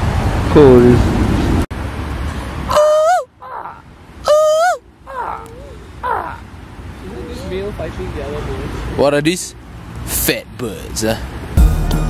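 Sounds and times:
bird calling: 2.7s - 6.5s.

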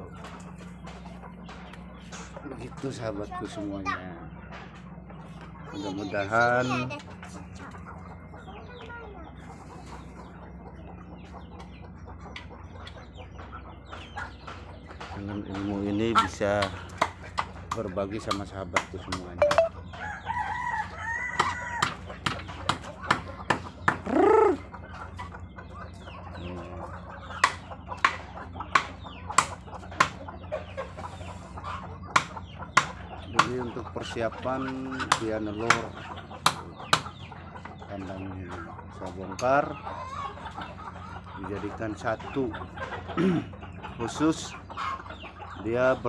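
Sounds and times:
beaks pecking at ground: 0.0s - 46.0s
chickens clucking: 0.0s - 46.0s
chicken call: 19.4s - 19.7s, 24.0s - 24.7s.

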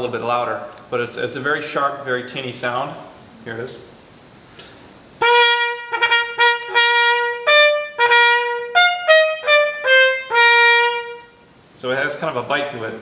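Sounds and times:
muted trumpet playing: 5.2s - 11.5s.

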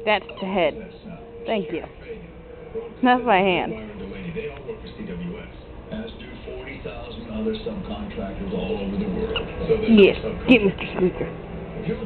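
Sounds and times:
television dialogue: 0.0s - 12.0s
squeaky toy squeaks: 0.2s - 0.6s.

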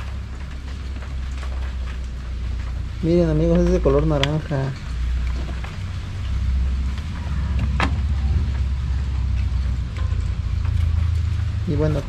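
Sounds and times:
low rumble: 0.0s - 12.0s.

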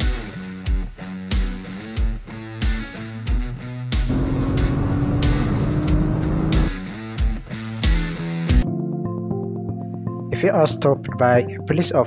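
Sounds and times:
held rock chord: 4.1s - 7.0s.

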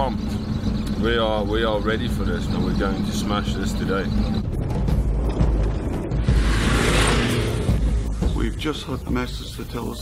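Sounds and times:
car rumbling over rough track: 0.0s - 9.4s
rush of noise: 5.8s - 8.3s.

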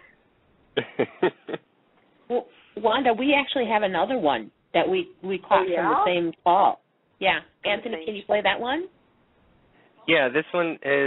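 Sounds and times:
person laughing: 0.8s - 1.6s.

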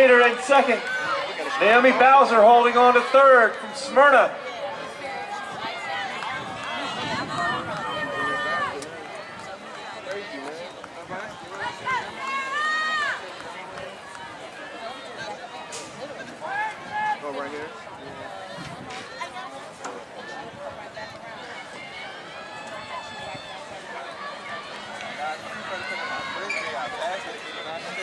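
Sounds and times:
outdoor background noise: 0.0s - 28.0s
spectators shouting and cheering: 0.0s - 28.0s.

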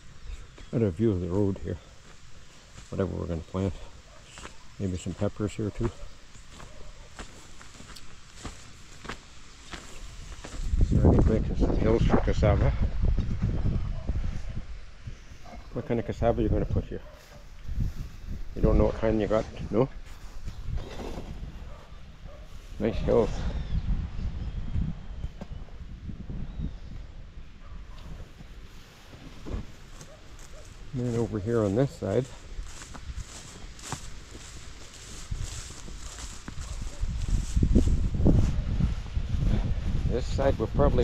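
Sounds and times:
footsteps through grass and soil: 0.0s - 12.4s, 13.4s - 23.3s, 28.0s - 41.0s.

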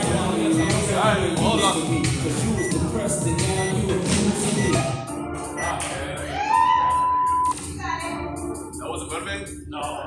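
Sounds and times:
background music: 0.0s - 10.0s
short countdown beeps: 0.6s - 2.8s, 3.5s - 3.8s, 4.6s - 4.9s, 5.6s - 5.8s, 7.0s - 7.5s
long loud timer beep: 1.5s - 2.0s, 2.6s - 2.8s, 4.6s - 4.8s.

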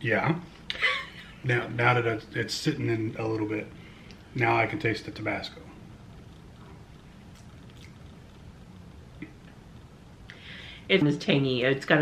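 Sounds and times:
steady low hum: 0.0s - 12.0s
soft mouth clicks: 7.3s - 8.0s.

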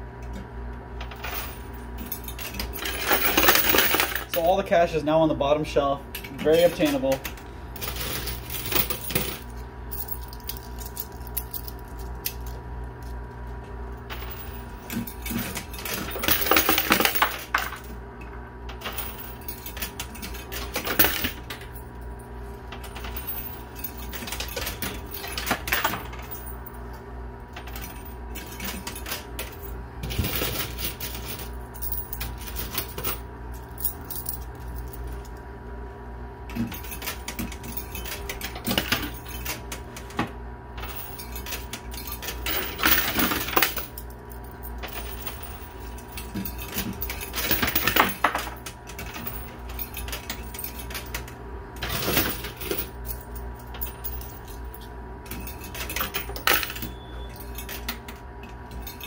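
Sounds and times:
steady machine hum: 0.0s - 59.0s
coins clinking: 1.0s - 4.6s, 6.2s - 13.1s, 14.0s - 17.9s, 18.7s - 22.0s, 22.7s - 26.8s, 27.6s - 35.4s, 36.5s - 40.1s, 40.8s - 59.0s.

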